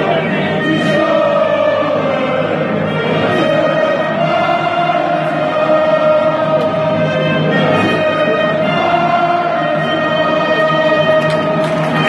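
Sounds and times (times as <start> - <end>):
band playing: 0.0 - 12.0
stadium crowd singing: 0.0 - 12.0.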